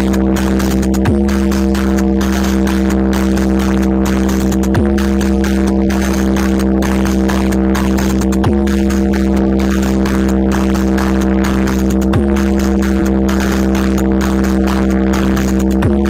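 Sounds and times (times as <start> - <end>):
electronic tone over deep bass: 0.0 - 16.0.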